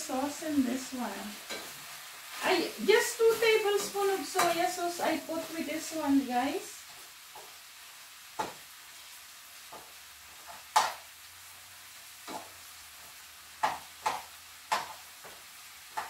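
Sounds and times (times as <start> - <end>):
meat sizzling in a frying pan: 0.0 - 16.0.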